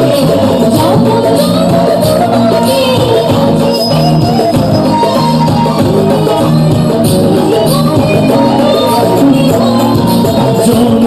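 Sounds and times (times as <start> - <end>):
live band with guitar and drums: 0.0 - 11.0.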